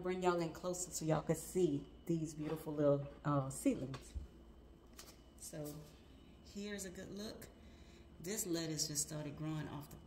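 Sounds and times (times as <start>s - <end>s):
woman speaking: 0.0s - 4.2s, 5.4s - 7.6s, 8.2s - 10.0s.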